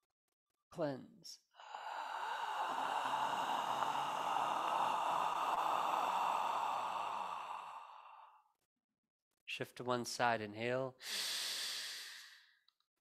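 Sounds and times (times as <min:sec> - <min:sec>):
person exhaling: 0:01.6 - 0:08.4, 0:11.0 - 0:12.5.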